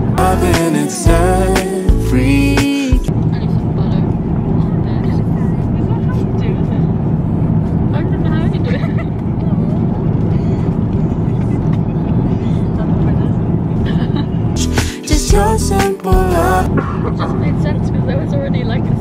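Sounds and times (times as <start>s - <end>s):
airliner cabin drone: 0.0s - 19.0s
quiet talking: 0.2s - 15.3s.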